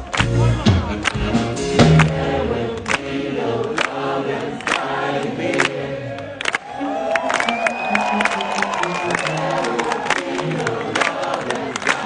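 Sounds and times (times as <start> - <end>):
live band playing: 0.0 - 2.8
crowd singing along: 0.4 - 12.0.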